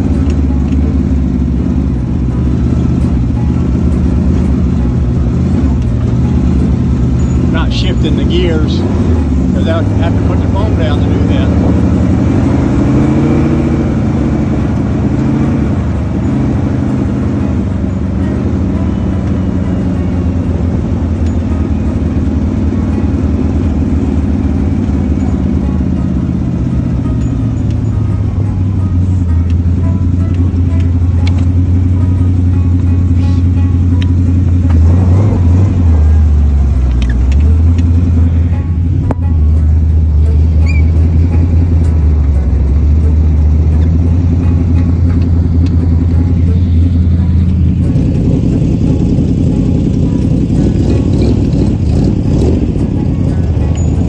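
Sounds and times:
car engine running: 0.0 - 54.0.

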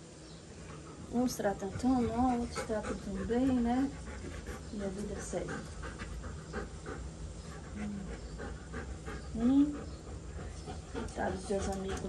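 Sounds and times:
dog panting: 0.7 - 12.0.

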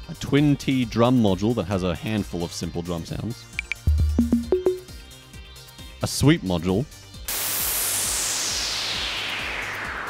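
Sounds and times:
synthesized crash cymbal hiss: 7.3 - 10.0.

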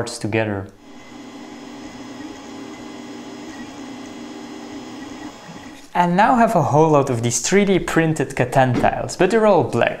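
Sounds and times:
printer mechanical hum: 0.8 - 5.9.

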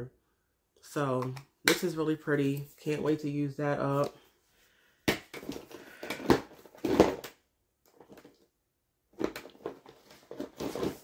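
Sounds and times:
plastic bottle knocking down: 5.1 - 7.3.

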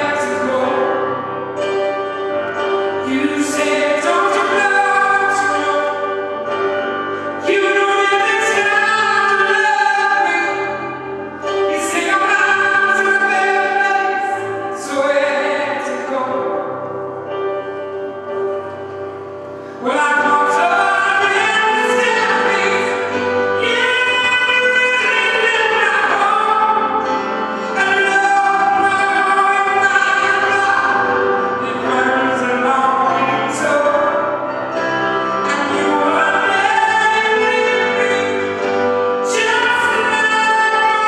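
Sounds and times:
woman singing blues: 3.0 - 6.4, 7.2 - 16.6, 19.8 - 34.6, 35.4 - 41.0.

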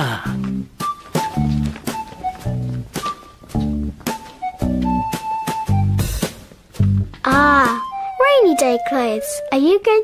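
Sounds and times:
playful plucked music: 0.4 - 10.0.

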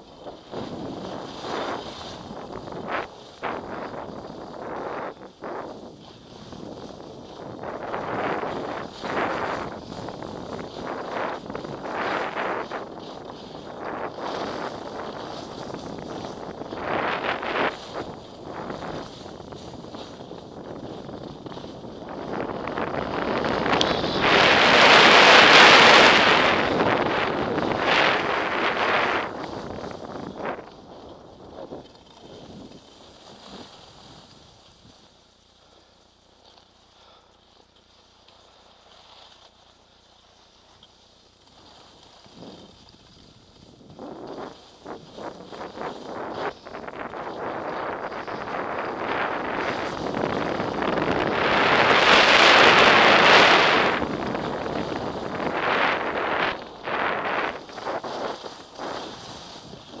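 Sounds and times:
wind rushing over microphone: 0.0 - 34.9, 42.4 - 60.0
skis scraping on snow: 0.0 - 60.0.

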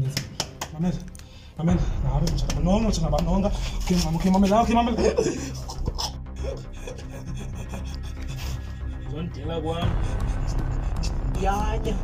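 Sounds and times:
person making choking sounds: 5.6 - 8.4.

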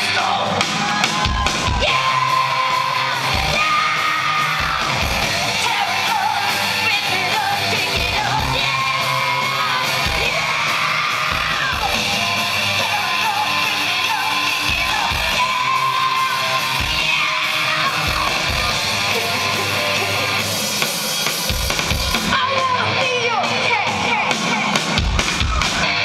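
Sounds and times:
live punk song through loudspeakers: 0.0 - 26.0
person yelling and singing: 1.4 - 20.4, 22.3 - 25.0.

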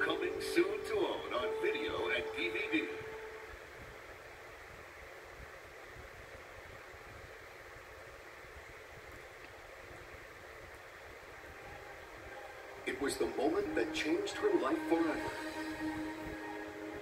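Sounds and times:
music jingle: 0.0 - 3.5, 11.6 - 17.0
tape hiss: 0.0 - 17.0.

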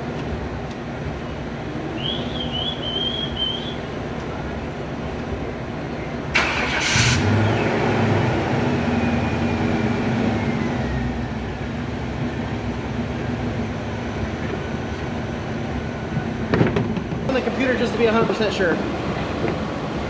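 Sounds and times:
diesel engine running: 0.0 - 20.0
diesel engine cranking: 6.3 - 20.0.

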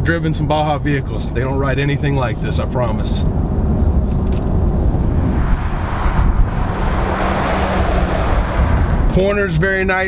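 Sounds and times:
engine low rumble: 0.0 - 10.0
tyres on the road: 0.0 - 10.0.

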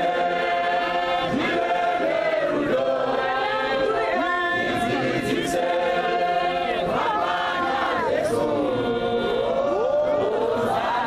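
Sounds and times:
congregation singing unaccompanied: 0.0 - 11.0.

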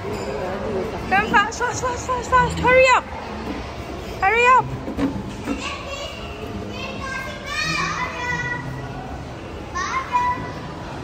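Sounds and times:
murmur of busy play area: 0.0 - 11.0
children shouting: 5.6 - 8.8, 9.6 - 11.0.

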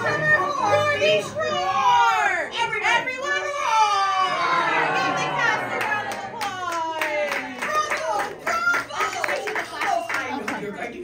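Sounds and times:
children's voices: 0.0 - 10.2.

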